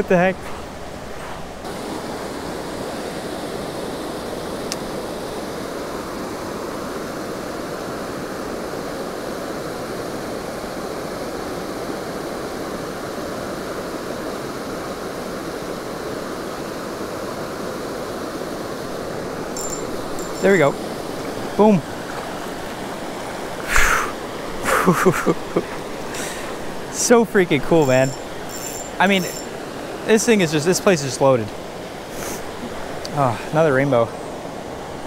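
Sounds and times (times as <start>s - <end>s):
creek water rushing over rocks: 18.0s - 35.0s.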